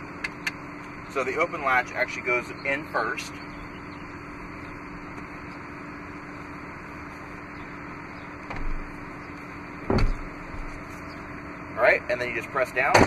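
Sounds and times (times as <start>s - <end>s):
steady hum and hiss: 0.0s - 13.0s
seat latching knock: 8.5s - 8.8s, 9.9s - 10.3s
soft thud: 9.9s - 10.2s.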